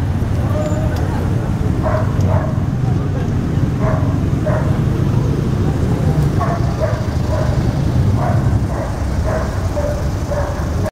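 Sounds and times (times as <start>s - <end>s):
traffic rumble: 0.0s - 10.9s
dog barking: 1.8s - 2.6s, 3.8s - 4.8s, 6.4s - 10.9s.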